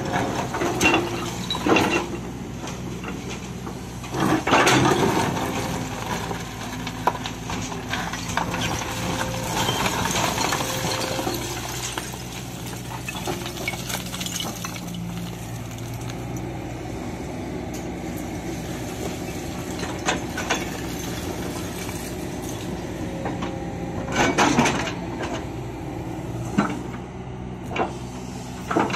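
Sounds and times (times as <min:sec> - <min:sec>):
diesel engine running: 0:00.0 - 0:28.9
bucket scraping rubble: 0:04.2 - 0:16.2
rocks clattering: 0:04.8 - 0:16.2.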